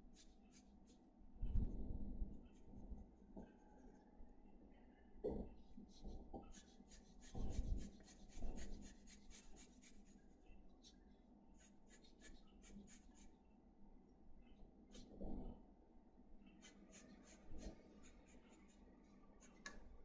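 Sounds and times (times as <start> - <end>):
pencil scratching on paper: 5.9 - 10.2, 11.6 - 13.3, 16.5 - 19.7.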